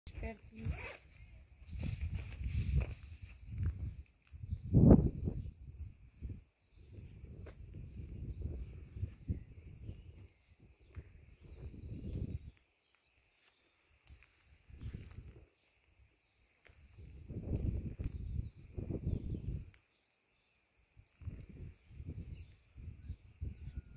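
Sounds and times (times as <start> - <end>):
low rumbling wind noise: 0.6 - 12.6, 14.6 - 15.5, 16.8 - 19.8, 21.0 - 23.9.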